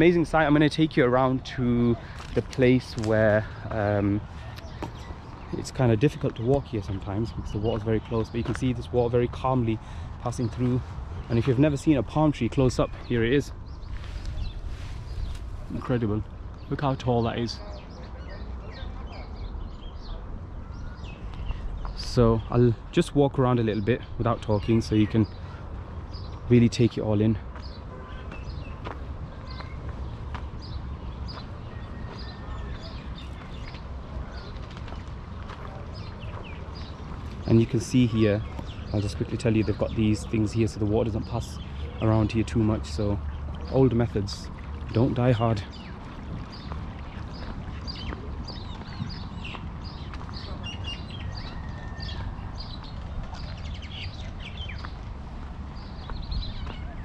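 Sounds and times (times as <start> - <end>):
small birds chirping: 0.0 - 57.0
footsteps on dirt path: 2.0 - 5.6, 13.7 - 15.9, 27.4 - 40.0, 45.7 - 57.0.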